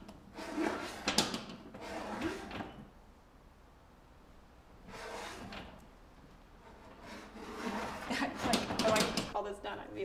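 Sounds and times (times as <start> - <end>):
tool scraping painting panel: 0.3 - 2.8, 4.9 - 5.8, 6.6 - 9.4.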